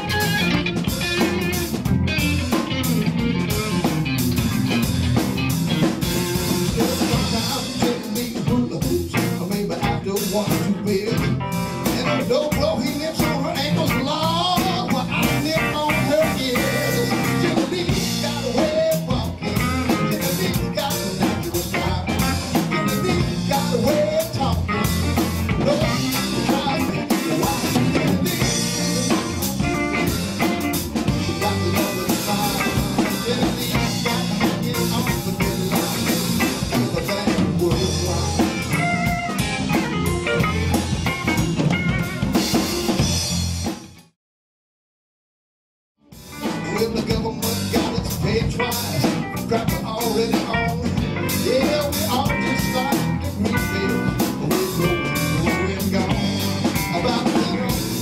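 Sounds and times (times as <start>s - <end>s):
electric bass: 0.0s - 44.1s, 46.2s - 58.0s
electric guitar: 0.0s - 44.1s, 46.0s - 58.0s
drum kit: 0.0s - 44.2s, 46.0s - 58.0s.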